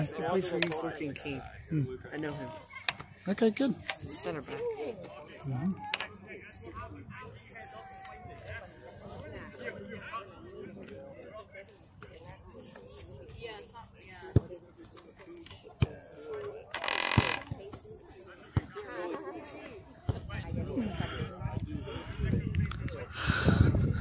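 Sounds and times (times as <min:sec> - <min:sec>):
distant shouting and chatter: 0:00.0 - 0:24.0.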